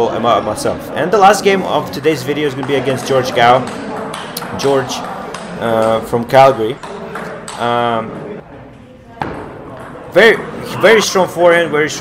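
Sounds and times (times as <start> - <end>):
faint hall ambience: 0.0 - 12.0.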